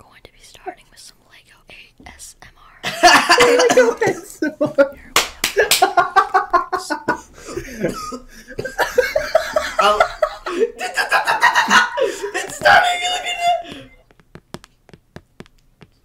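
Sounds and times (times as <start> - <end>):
voices: 2.2 - 14.0
laughter: 2.8 - 4.9, 5.6 - 13.8
sharp clicks or smacks: 14.0 - 16.0.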